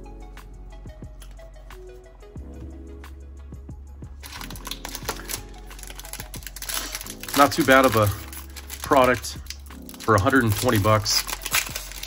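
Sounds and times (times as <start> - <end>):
background music: 0.0 - 12.0
foil pack crinkling: 4.2 - 12.0
trading cards clicking: 4.2 - 12.0.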